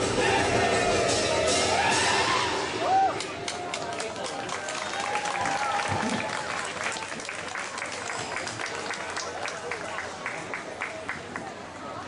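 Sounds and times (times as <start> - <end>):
dance music: 0.0 - 2.8
crowd calling out: 0.0 - 3.8
audience applause: 3.1 - 11.6.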